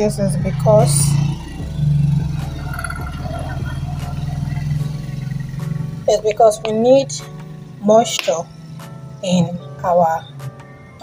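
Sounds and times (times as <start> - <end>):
vehicle engine running: 0.0 - 10.8
low rumble of traffic: 0.0 - 11.0.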